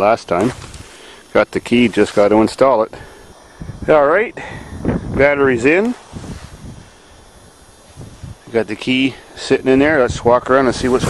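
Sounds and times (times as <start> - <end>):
microphone handling rustle: 0.2 - 2.4, 3.3 - 4.0, 4.7 - 8.7, 9.8 - 11.0
wind on microphone: 3.3 - 8.6, 9.8 - 11.0.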